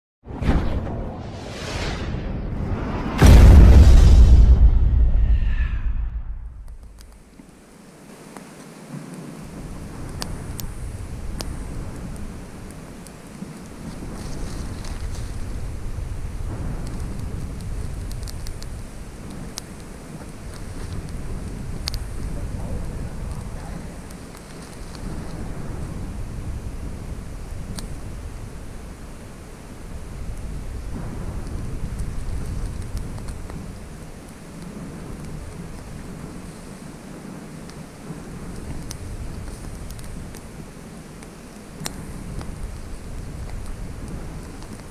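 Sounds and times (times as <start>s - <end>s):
wind buffeting microphone: 9.3s - 44.9s.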